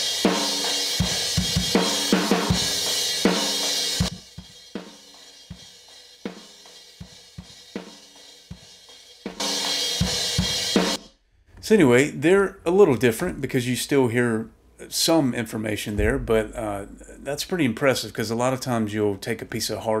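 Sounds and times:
drum kit playing: 0:00.0 - 0:11.1, 0:16.0 - 0:17.7.

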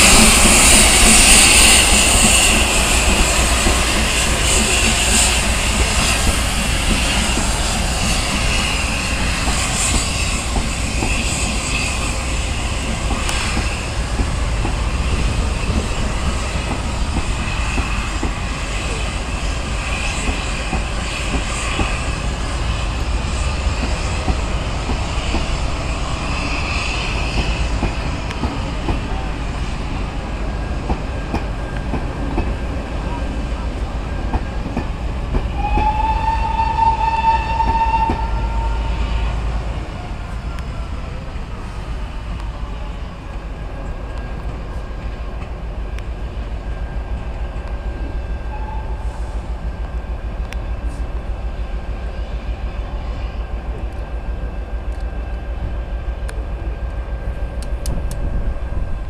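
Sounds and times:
train coaches rumbling and clattering: 0:00.0 - 0:59.0.

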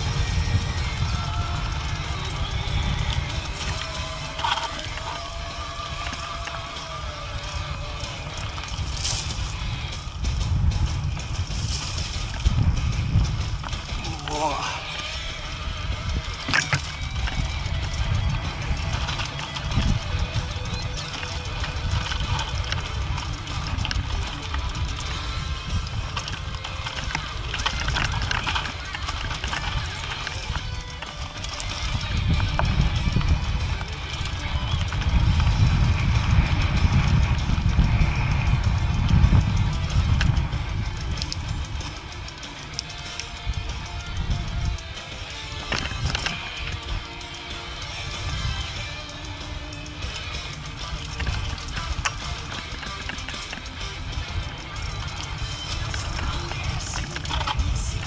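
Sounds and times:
background music: 0:00.0 - 0:58.0
bike rattling: 0:00.0 - 0:58.0
tyres crunching on dirt: 0:00.0 - 0:58.0
wind buffeting microphone: 0:00.0 - 0:58.0.

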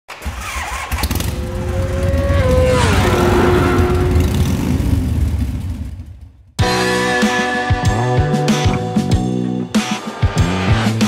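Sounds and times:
motorcycle engine rumbling: 0:00.2 - 0:06.8.

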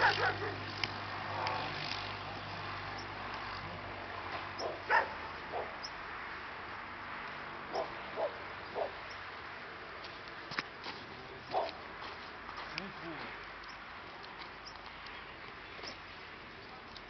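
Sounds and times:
dog barking: 0:00.0 - 0:00.6, 0:04.6 - 0:05.8, 0:07.7 - 0:09.0, 0:11.5 - 0:11.8.

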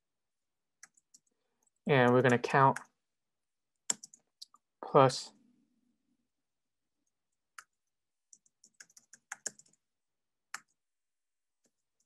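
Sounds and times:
typing on computer keyboard: 0:00.8 - 0:02.9, 0:03.8 - 0:04.3, 0:07.6 - 0:09.8.

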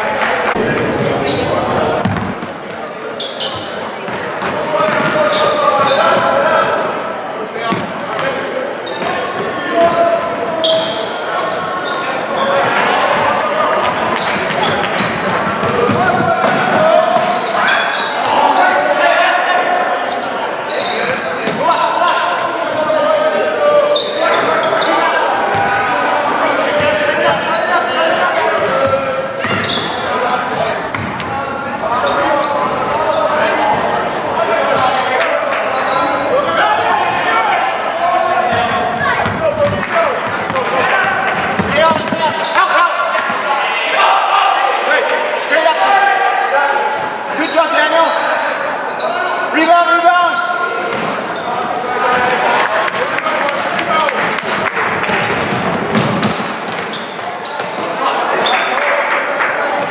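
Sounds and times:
indistinct voices echoing: 0:00.0 - 0:59.9
basketball bouncing on hardwood: 0:02.0 - 0:02.4.

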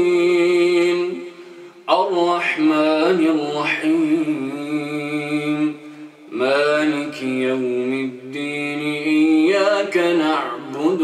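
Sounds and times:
man chanting melodically: 0:00.0 - 0:11.0.

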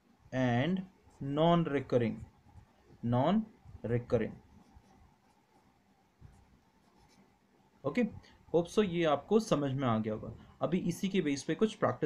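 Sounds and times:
pen scratching on paper: 0:04.5 - 0:07.4.

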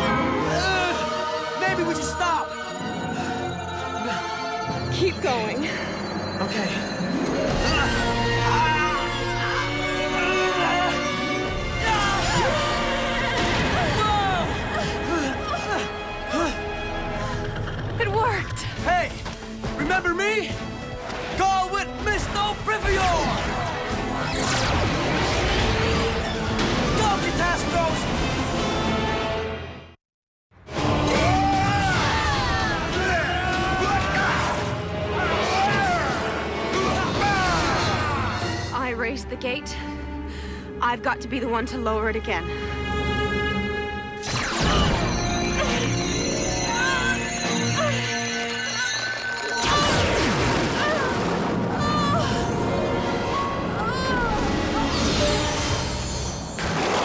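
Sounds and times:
dramatic background music: 0:00.0 - 0:30.0, 0:30.6 - 0:57.0
magical rumble and crash: 0:44.2 - 0:53.8.

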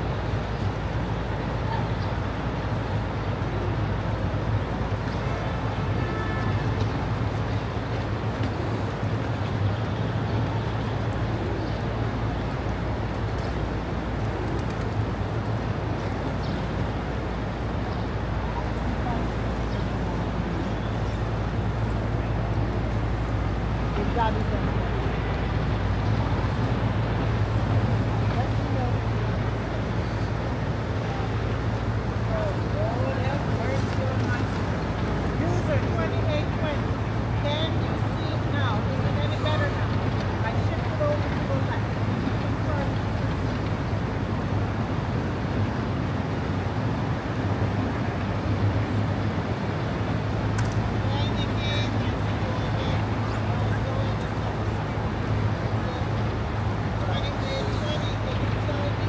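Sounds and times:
city street traffic rumble: 0:00.0 - 0:59.0
faint voices of passers-by: 0:00.0 - 0:59.0.

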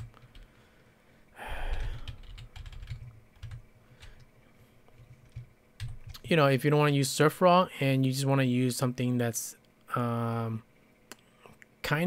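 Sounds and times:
keyboard typing: 0:00.0 - 0:00.5, 0:01.6 - 0:04.3, 0:04.9 - 0:06.3.

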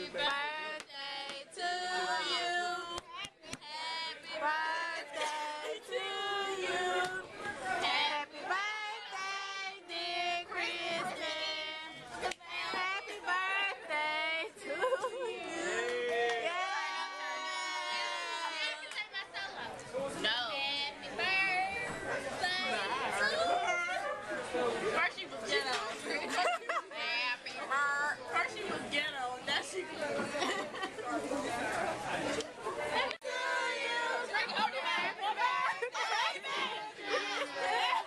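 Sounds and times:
women's voices chattering: 0:16.8 - 0:38.0.

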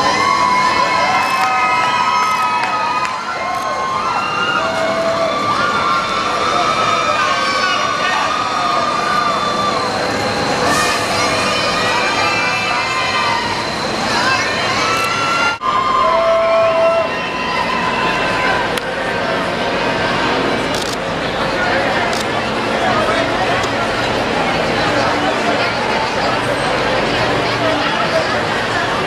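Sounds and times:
crowd cheering and shouting: 0:00.0 - 0:29.0
long high shouts: 0:10.7 - 0:18.7.

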